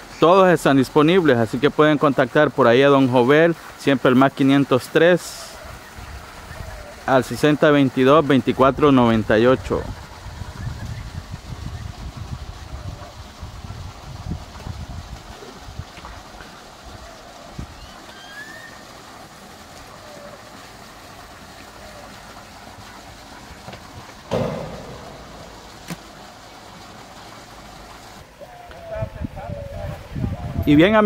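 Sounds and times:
wind rumble on microphone: 9.5 - 17.8, 28.7 - 31.0
short loud sound: 24.3 - 26.0.

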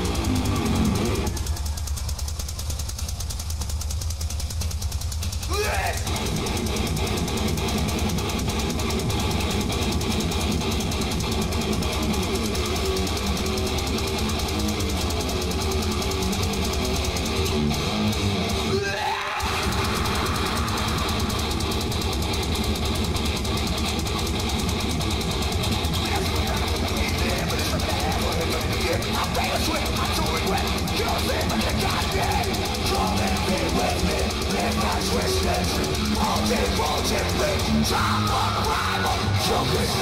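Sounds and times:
distorted electric guitar riffing: 0.0 - 1.8, 5.4 - 40.0
heavy metal band playing: 0.0 - 2.2, 5.2 - 40.0.

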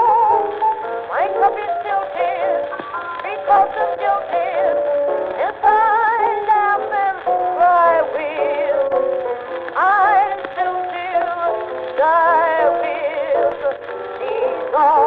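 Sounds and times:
old blues recording: 0.0 - 15.0.

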